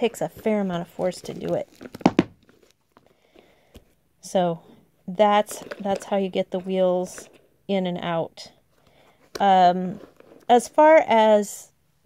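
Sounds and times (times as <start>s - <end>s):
shoe handling: 0.4s - 3.1s.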